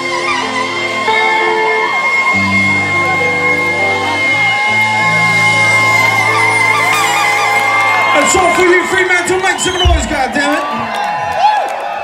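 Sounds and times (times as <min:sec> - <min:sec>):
live reggae band playing: 0:00.0 - 0:10.4
crowd whooping and yelling: 0:00.0 - 0:12.0.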